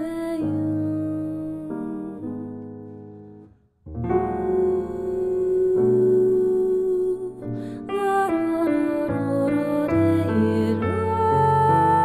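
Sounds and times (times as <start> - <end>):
grand piano chords: 0.0 - 12.0.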